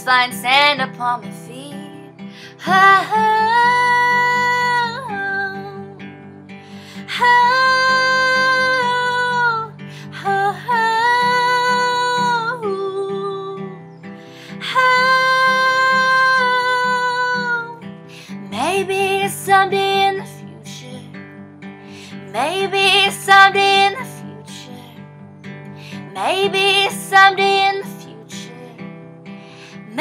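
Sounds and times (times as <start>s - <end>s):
woman singing long wordless notes: 0.0s - 21.2s, 22.0s - 25.1s, 25.8s - 28.9s
strummed acoustic guitar: 0.0s - 30.0s.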